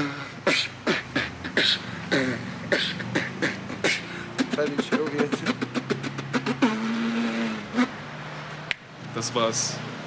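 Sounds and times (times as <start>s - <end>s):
beatboxing clicks and snare hits: 0.0s - 8.0s, 8.6s - 8.9s
low buzzing vocal note: 0.0s - 8.0s.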